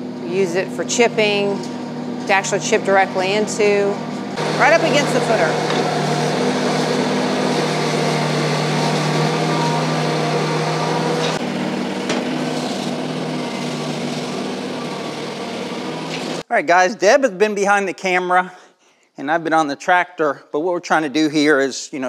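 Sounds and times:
tractor engine running: 1.6 - 16.4
loader bucket scraping dirt: 1.7 - 16.4.

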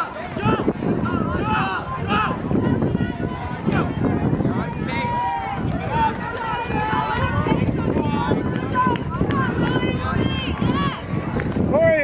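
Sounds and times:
spectators shouting encouragement: 0.0 - 11.2.

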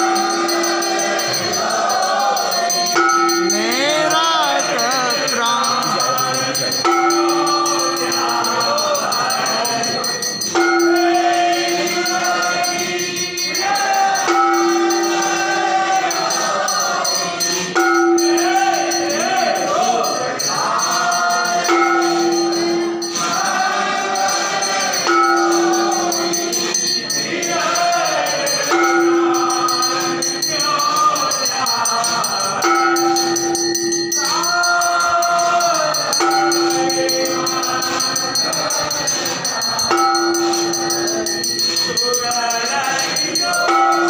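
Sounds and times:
group singing devotional song: 0.0 - 44.0
small metal percussion jingling: 0.0 - 44.0.

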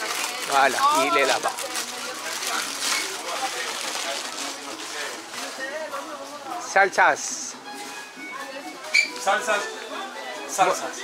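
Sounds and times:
background hubbub: 0.0 - 11.0
faint voices: 0.0 - 11.0.

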